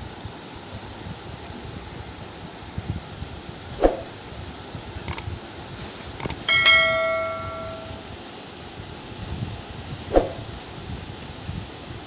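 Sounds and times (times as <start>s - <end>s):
notification bell ding: 6.5s - 8.0s.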